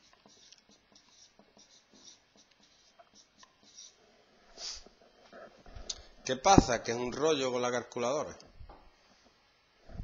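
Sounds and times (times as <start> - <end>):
marker writing on whiteboard: 0.0 - 6.8.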